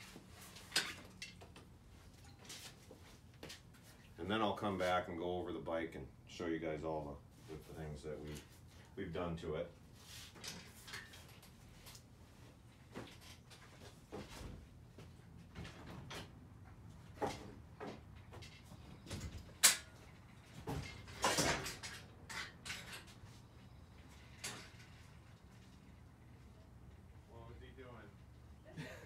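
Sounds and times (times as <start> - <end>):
objects knocking and rattling: 0.5 - 2.8, 17.1 - 23.3.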